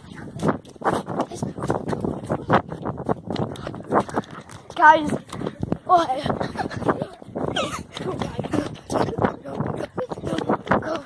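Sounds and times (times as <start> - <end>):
running footfalls: 0.0 - 11.0.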